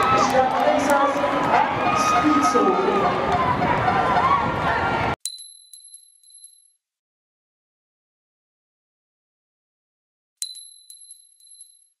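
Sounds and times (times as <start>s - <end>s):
high metallic ding: 10.4s - 12.0s
light metallic clinks: 10.4s - 12.0s.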